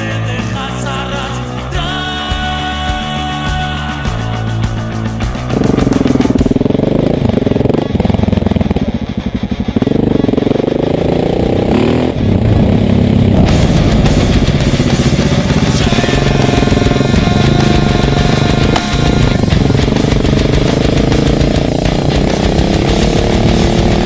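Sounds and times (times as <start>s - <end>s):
rock music: 0.0s - 24.0s
motorcycle engine revving: 1.4s - 24.0s.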